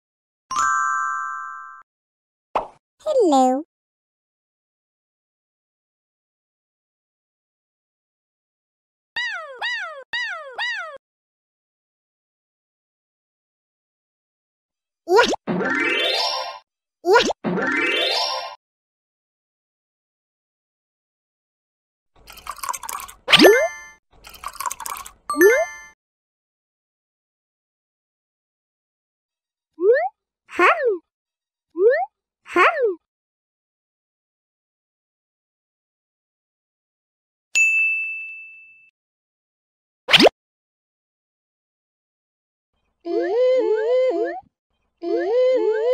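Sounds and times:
cartoon animal calls: 0:09.2 - 0:11.0
high bell-like ding: 0:37.6 - 0:38.9.

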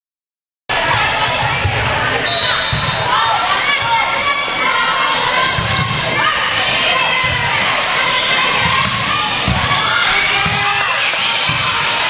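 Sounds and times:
people shouting in echoing gym: 0:00.7 - 0:12.0.

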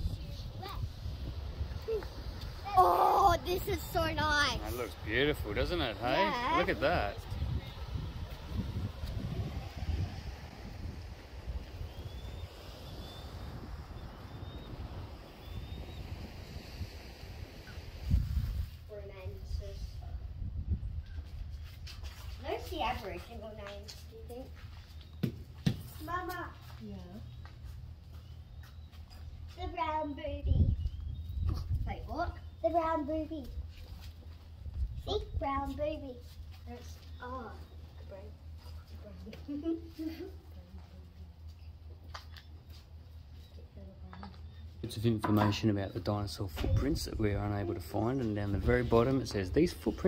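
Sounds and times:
faint surf hiss: 0:00.0 - 0:20.5
wind buffeting microphone: 0:00.0 - 0:24.5, 0:29.2 - 0:33.9, 0:34.5 - 0:38.6, 0:45.4 - 0:50.0
child's high-pitched vocal sounds: 0:01.8 - 0:04.6
low rumble: 0:03.4 - 0:21.2
faint high chirps: 0:11.8 - 0:16.5.

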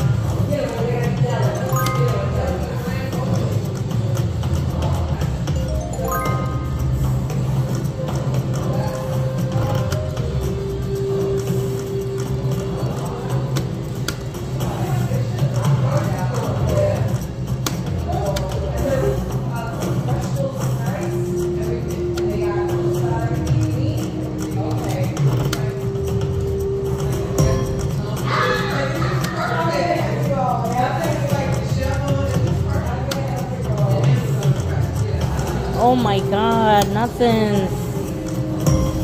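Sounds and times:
casino hum: 0:01.2 - 0:18.0
slot machine music and effects: 0:01.6 - 0:03.0, 0:05.4 - 0:08.5.

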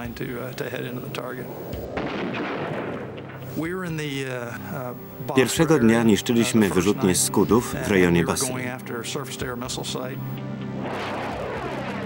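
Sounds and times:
bomb explosion blast: 0:01.6 - 0:03.7, 0:10.8 - 0:12.0.

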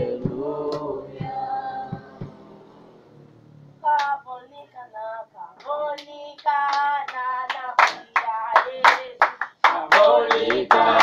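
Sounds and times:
group singing in harmony: 0:00.0 - 0:03.1, 0:06.5 - 0:11.0
hand claps: 0:05.6 - 0:11.0.

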